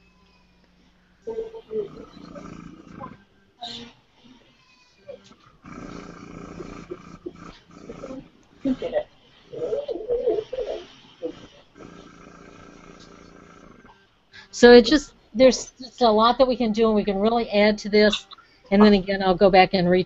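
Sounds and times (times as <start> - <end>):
faint indistinct talking: 1.2 - 5.4
small air pump buzzing: 5.5 - 9.7.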